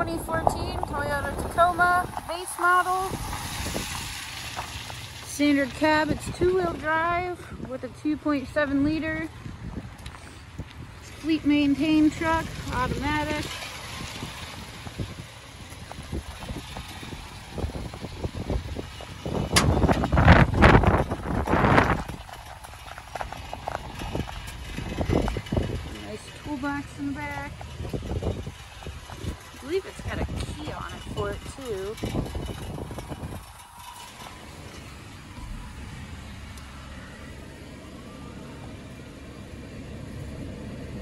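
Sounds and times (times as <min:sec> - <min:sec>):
wind on microphone: 0:00.0 - 0:04.8, 0:08.8 - 0:36.2
footsteps on wet gravel: 0:00.8 - 0:07.0, 0:12.4 - 0:18.3, 0:19.0 - 0:26.8.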